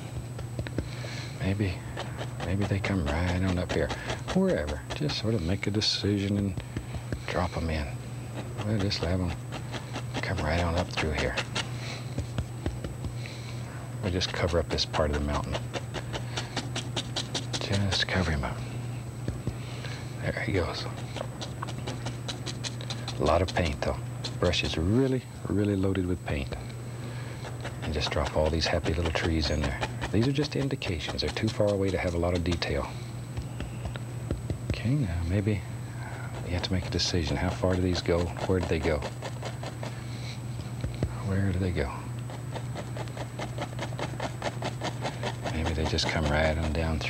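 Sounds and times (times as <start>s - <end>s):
brush tapping on canvas: 0.0s - 13.5s, 14.1s - 18.3s, 19.2s - 19.7s, 27.4s - 35.4s, 42.3s - 47.0s.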